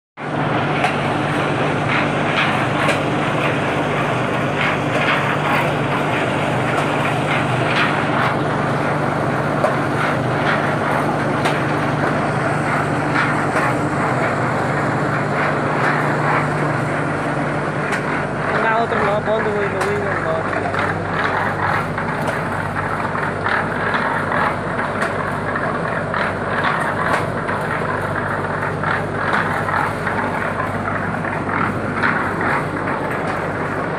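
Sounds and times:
brick-making machinery humming: 0:00.2 - 0:33.9.

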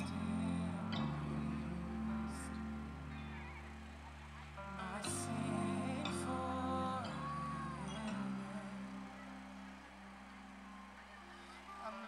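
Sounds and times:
band playing soft chords: 0:00.0 - 0:12.0.

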